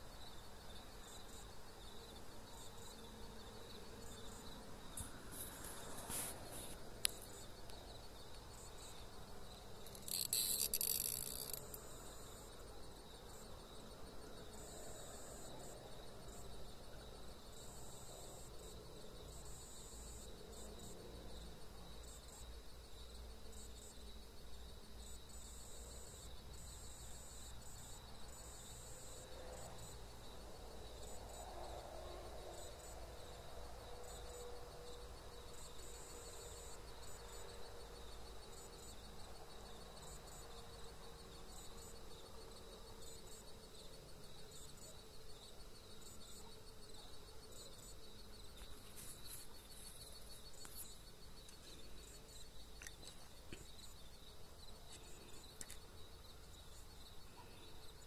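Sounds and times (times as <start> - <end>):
loud high insect buzz: 0.0 - 15.5
crickets trilling: 0.0 - 58.0.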